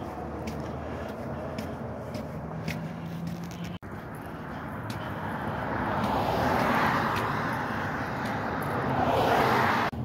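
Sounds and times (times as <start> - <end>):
vehicles passing: 0.0 - 10.0.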